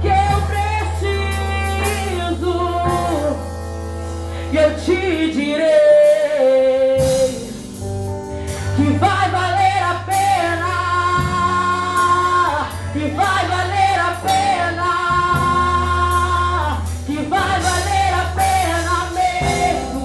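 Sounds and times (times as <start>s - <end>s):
woman singing gospel song: 0.0s - 3.4s, 4.5s - 7.6s, 8.8s - 20.0s
instrumental accompaniment: 0.0s - 20.0s.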